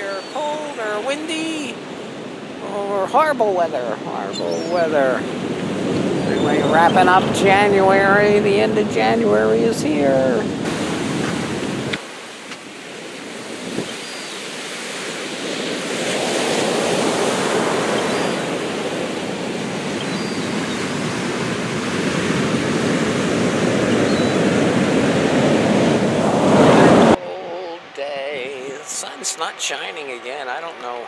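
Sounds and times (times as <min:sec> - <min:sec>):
ocean surf breaking on beach: 0:00.0 - 0:31.0.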